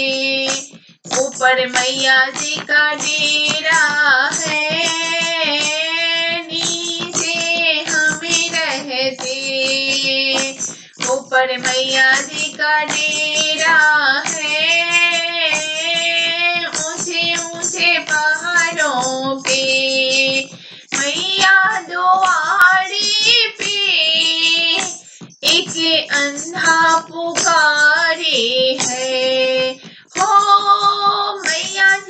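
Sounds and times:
person singing devotional song: 0.0 - 32.0.

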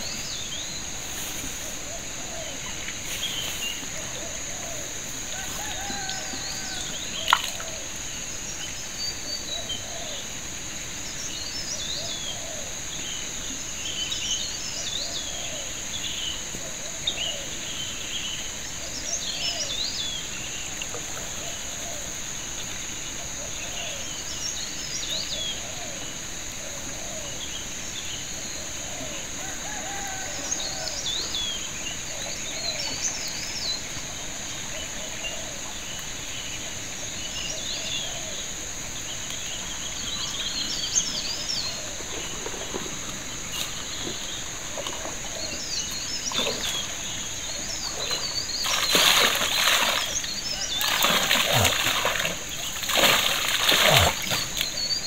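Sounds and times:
high insect drone: 0.0 - 55.0
birds chirping: 39.4 - 55.0.

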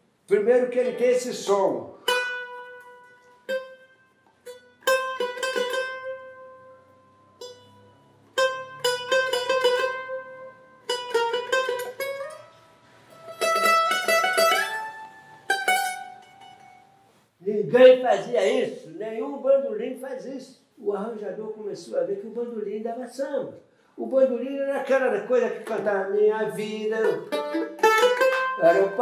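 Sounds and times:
plucked mandolin solo: 1.9 - 17.1, 25.5 - 29.0.

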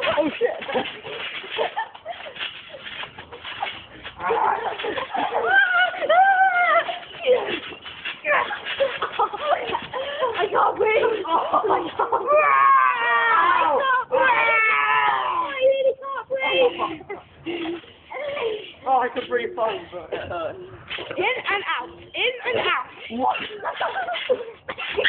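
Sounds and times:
children yelling and laughing: 0.0 - 18.9, 21.1 - 25.0.

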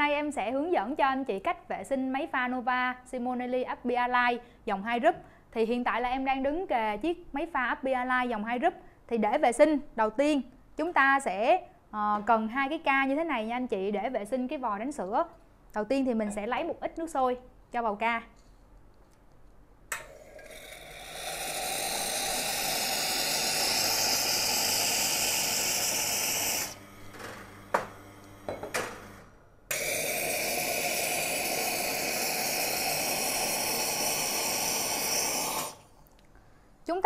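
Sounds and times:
steam wand hissing: 20.2 - 26.8, 29.7 - 35.9.

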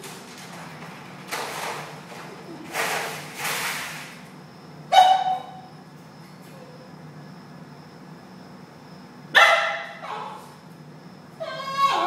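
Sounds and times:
plastic pan scraping on tile: 1.3 - 4.2.

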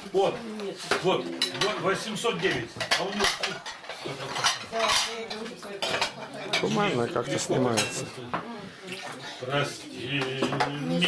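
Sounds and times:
cutlery clinking against plates: 0.8 - 9.2, 10.1 - 11.0.

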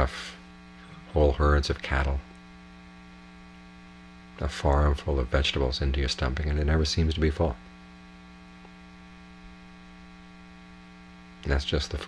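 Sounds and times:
man speaking: 0.0 - 2.3, 4.4 - 7.6, 11.4 - 12.0
electrical mains hum: 0.0 - 12.0.

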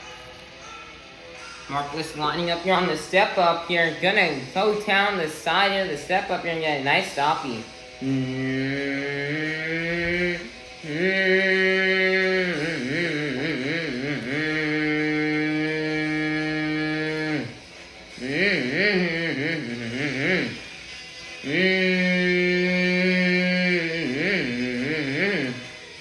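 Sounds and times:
person humming engine noises: 7.6 - 26.0.

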